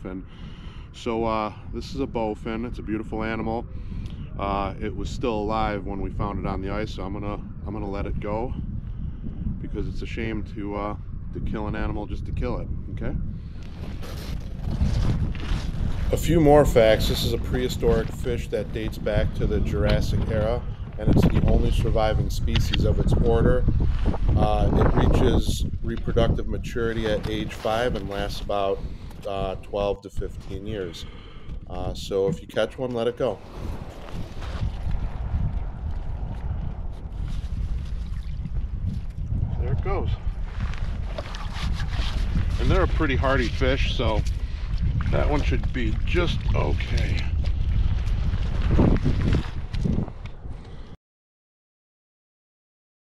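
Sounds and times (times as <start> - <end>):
wind buffeting microphone: 0.0 - 51.0
canvas jacket rustling: 13.8 - 16.2, 33.4 - 35.2, 40.4 - 43.1.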